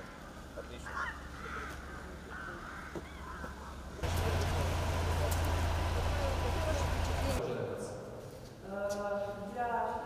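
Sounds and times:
steady low hum with hiss: 0.0 - 7.4.

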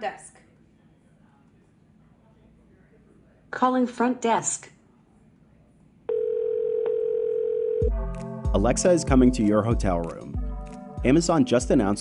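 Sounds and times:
phone call ringing tone: 6.1 - 8.0.

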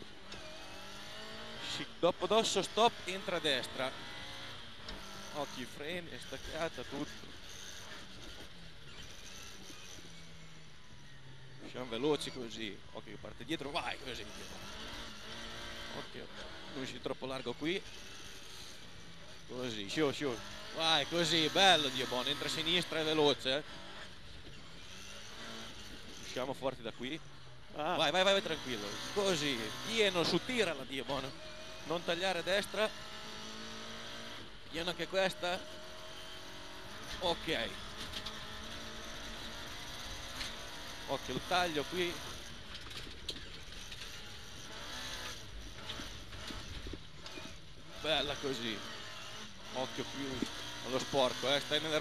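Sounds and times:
rally car engine revving: 0.0 - 52.0
road and cabin noise: 0.0 - 52.0.

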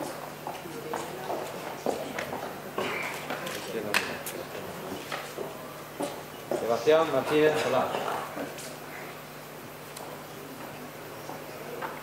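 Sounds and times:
low murmuring voices: 0.0 - 12.0.

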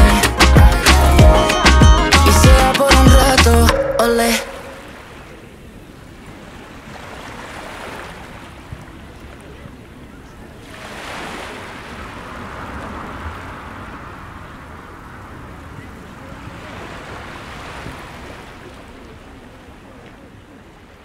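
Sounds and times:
waves washing onto beach: 4.2 - 21.0
light wind: 4.4 - 21.0.

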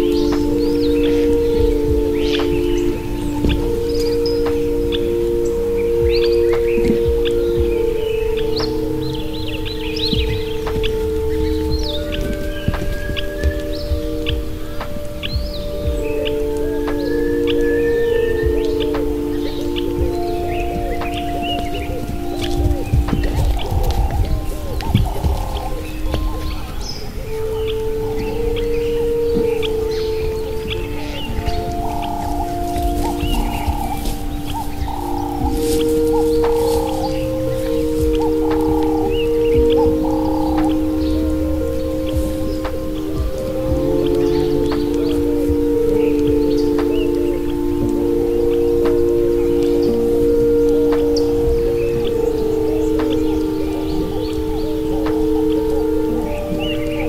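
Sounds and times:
ambient meditation music: 0.0 - 57.0
bird chirps: 0.0 - 57.0.

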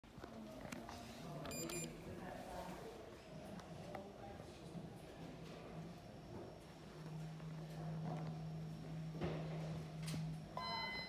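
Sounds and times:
lift call button beep: 1.5 - 1.9, 10.6 - 11.0.

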